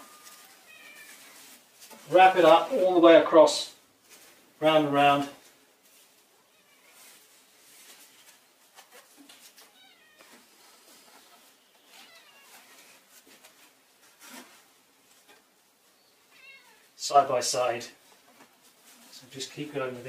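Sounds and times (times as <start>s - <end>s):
cat meowing faintly: 0.0s - 1.6s, 6.4s - 7.2s, 9.6s - 10.5s, 11.8s - 13.0s, 16.3s - 16.9s
fabric rustling: 0.0s - 3.0s.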